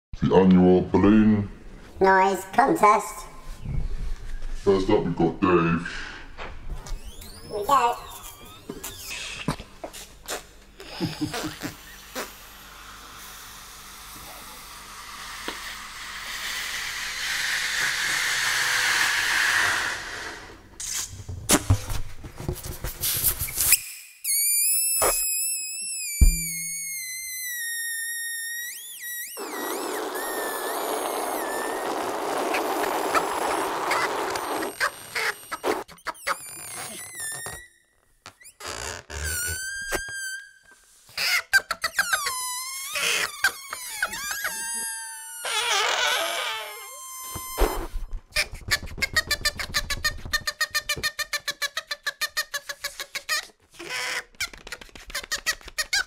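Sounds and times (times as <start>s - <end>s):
balloon necks squealing: 6.9s - 9.6s, 10.2s - 12.6s, 23.6s - 56.0s
balloon air hissing: 10.3s - 21.1s, 23.0s - 35.9s, 42.3s - 48.1s.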